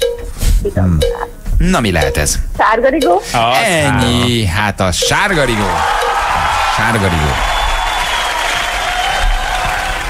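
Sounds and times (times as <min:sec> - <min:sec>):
applause and cheering: 0:05.4 - 0:10.0.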